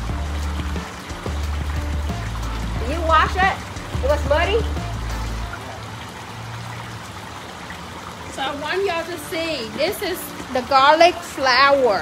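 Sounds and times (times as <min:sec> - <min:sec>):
trickling running water: 0:00.0 - 0:12.0.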